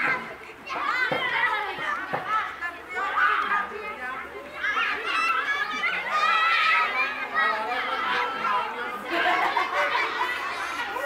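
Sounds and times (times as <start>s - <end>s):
children calling out and talking: 0.0s - 11.0s.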